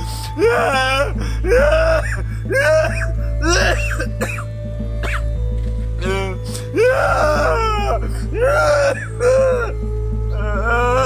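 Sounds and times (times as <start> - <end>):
man sobbing: 0.0 - 5.2, 6.0 - 9.8
background music with low bass: 0.0 - 11.0.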